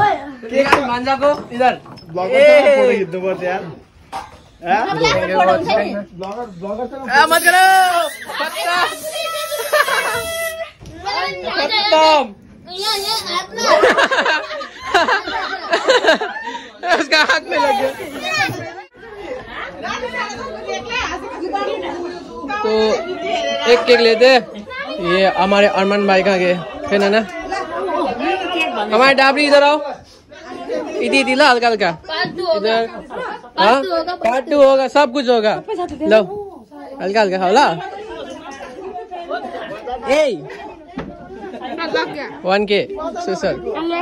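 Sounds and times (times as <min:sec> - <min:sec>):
people chattering: 0:00.0 - 0:44.0.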